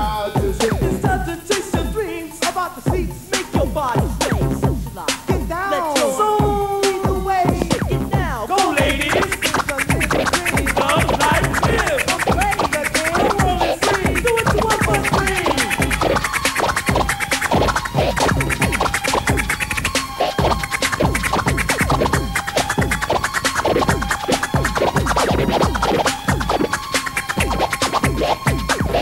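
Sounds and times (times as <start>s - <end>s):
rhythmic beat: 0.0s - 29.0s
vinyl record scratching: 0.0s - 29.0s.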